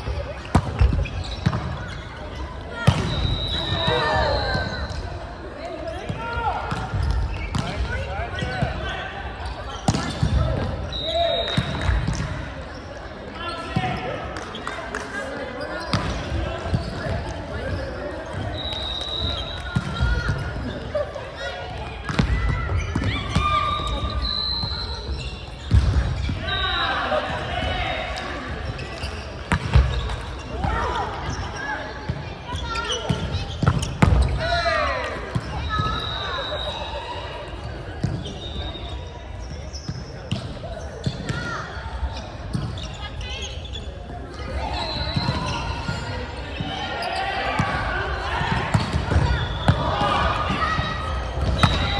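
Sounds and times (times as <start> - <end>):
sneakers squealing on court: 0.3 - 5.2, 5.9 - 14.8, 15.5 - 20.8, 22.1 - 27.6, 28.3 - 51.9
players calling out: 40.8 - 51.9.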